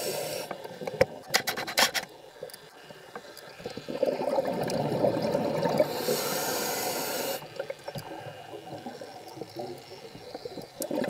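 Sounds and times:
exhaled bubbles gurgling underwater: 0:03.6 - 0:11.0
regulator valve hissing: 0:05.8 - 0:07.4.

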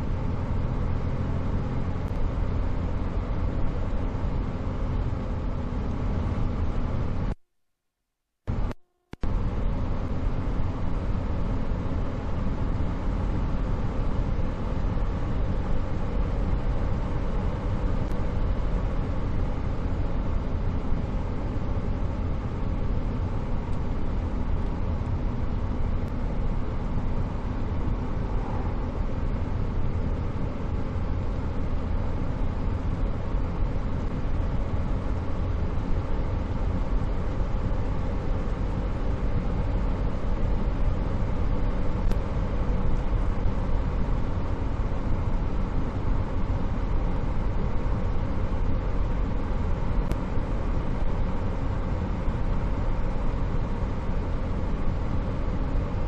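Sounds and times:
car engine and road rumble: 0:00.0 - 0:07.4, 0:08.5 - 0:56.0.

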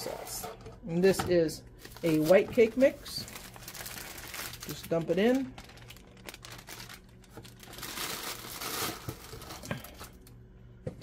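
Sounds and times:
plastic bag crinkling: 0:01.8 - 0:10.3.

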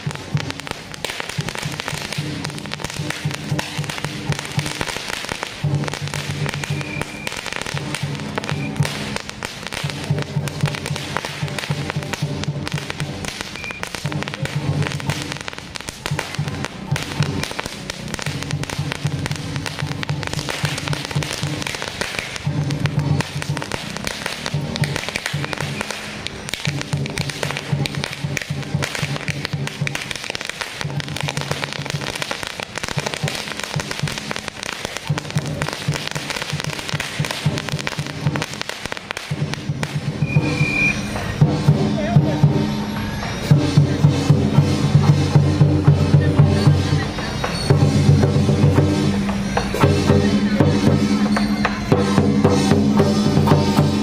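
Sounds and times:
firecrackers crackling: 0:00.0 - 0:54.0.

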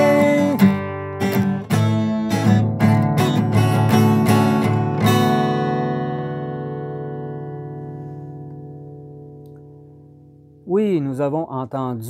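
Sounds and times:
acoustic guitar chord ringing: 0:00.0 - 0:10.6.

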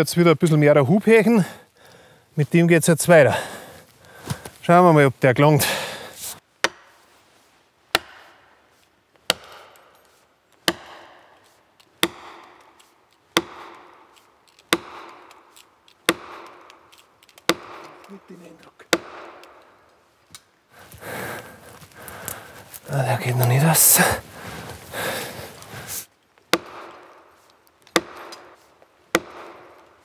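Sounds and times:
axe hammering plastic wedges: 0:09.3 - 0:09.6, 0:10.6 - 0:11.1, 0:12.0 - 0:14.0, 0:14.6 - 0:15.4, 0:16.0 - 0:16.8, 0:17.4 - 0:18.2, 0:18.9 - 0:19.6, 0:26.5 - 0:27.2, 0:27.9 - 0:29.9.

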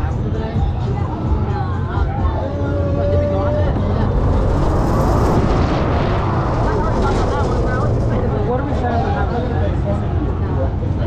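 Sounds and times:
wind buffeting microphone: 0:02.5 - 0:11.0.

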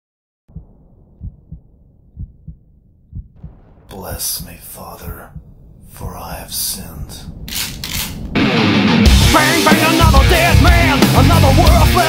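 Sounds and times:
heartbeat thumps: 0:00.5 - 0:08.5
person singing: 0:09.1 - 0:12.0.

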